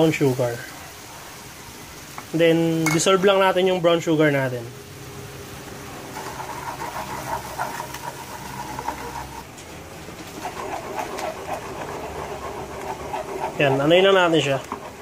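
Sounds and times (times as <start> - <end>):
spoon stirring in a pan: 6.1 - 9.5, 10.2 - 15.0
spoon scraping: 6.2 - 9.5.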